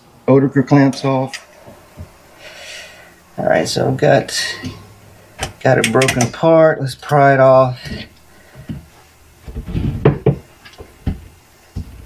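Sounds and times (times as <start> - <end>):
pliers clicking on metal clamp: 5.8 - 6.4.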